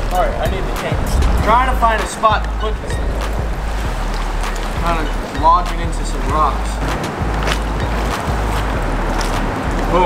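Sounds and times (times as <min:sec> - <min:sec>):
low rumble: 0:00.0 - 0:06.8
shallow water splashing: 0:00.7 - 0:10.0.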